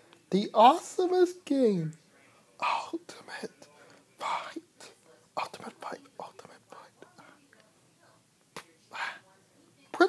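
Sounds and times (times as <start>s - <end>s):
man whispering: 0.1s - 7.4s, 8.9s - 9.3s.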